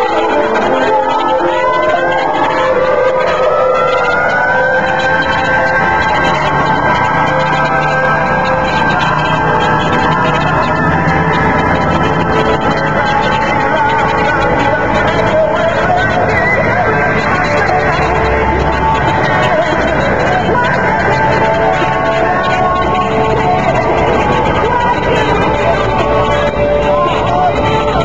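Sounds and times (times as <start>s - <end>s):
music playing: 0.0s - 28.0s
vehicle siren wailing: 0.0s - 28.0s.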